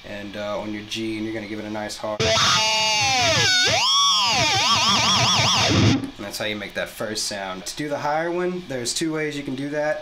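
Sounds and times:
distorted electric guitar squeal: 2.2s - 6.1s.

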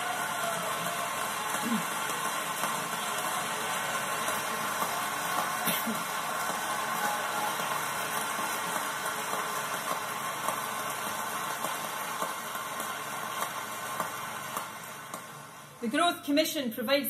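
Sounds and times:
audience applauding: 0.0s - 15.8s.

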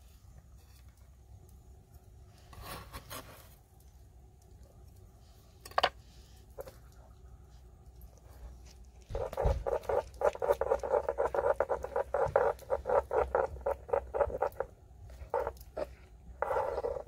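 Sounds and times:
stone pestle grinding wet paste: 9.1s - 17.0s.

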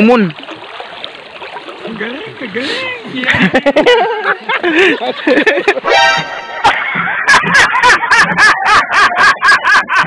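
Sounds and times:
man laughing hard: 3.2s - 5.9s, 6.6s - 10.0s.

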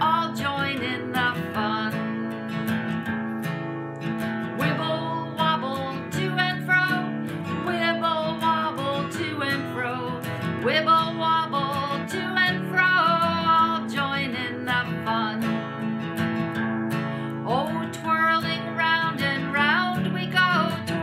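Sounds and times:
woman singing: 0.0s - 3.2s, 4.4s - 16.2s, 17.2s - 21.0s
acoustic guitar strumming chords: 0.0s - 21.0s.

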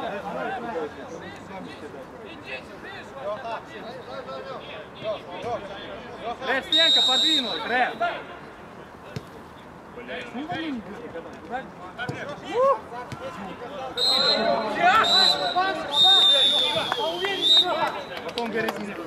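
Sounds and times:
high steady whistle-like tone: 6.7s - 7.8s, 14.0s - 17.9s.

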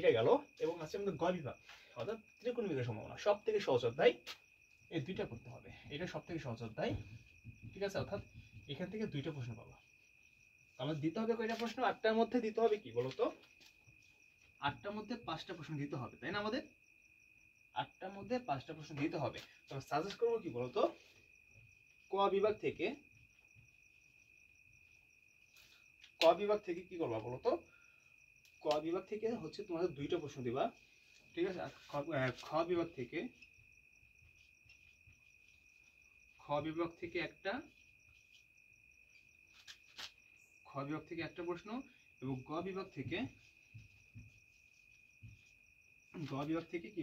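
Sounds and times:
man speaking: 0.0s - 4.2s, 4.9s - 7.0s, 10.8s - 13.4s, 14.6s - 16.7s, 17.8s - 21.0s, 22.1s - 23.0s, 26.2s - 27.6s, 28.6s - 30.8s, 31.4s - 33.4s, 36.4s - 37.7s, 40.7s - 43.4s, 46.2s - 47.0s.

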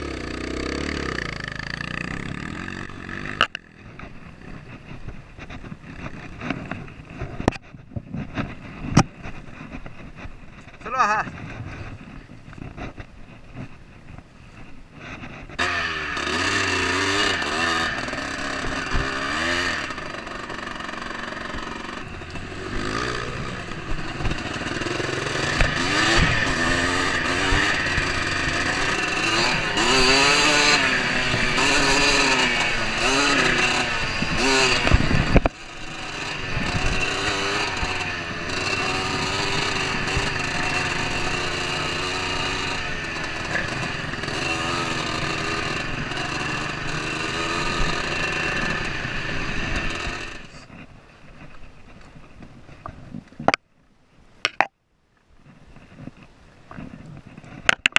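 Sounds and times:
dirt bike engine revving: 0.0s - 7.5s, 15.0s - 50.8s.

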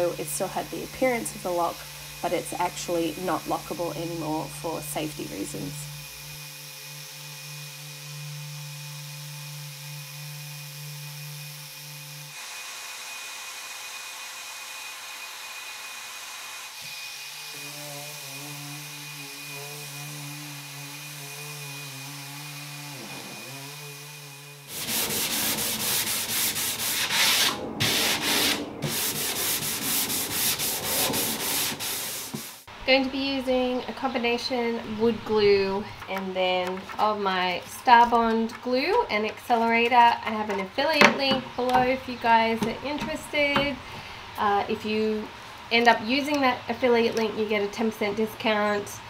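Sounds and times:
electric orbital sander running: 0.0s - 32.6s
rough rubbing strokes: 17.9s - 32.7s.

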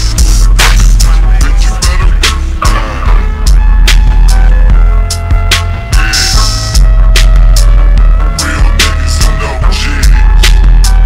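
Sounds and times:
deep heavy bass: 0.0s - 11.0s
slowed hip-hop track: 0.0s - 11.0s.

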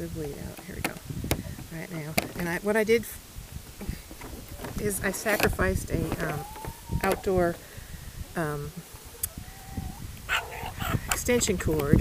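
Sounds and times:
rustling: 3.2s - 12.0s
dog whining: 6.3s - 7.3s, 8.8s - 10.8s.

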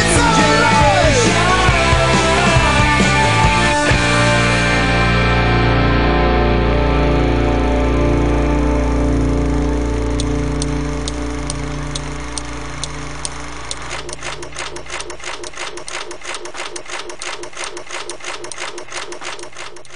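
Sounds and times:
hard rock chord ringing: 0.0s - 14.9s
sharp ticking: 8.6s - 19.9s
rapid mechanical clatter: 9.1s - 19.9s.

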